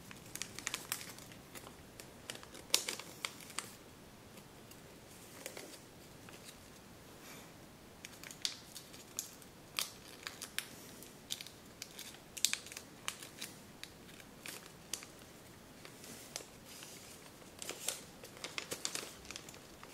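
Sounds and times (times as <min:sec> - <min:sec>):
paper crackling: 0:00.0 - 0:03.8, 0:11.3 - 0:19.9.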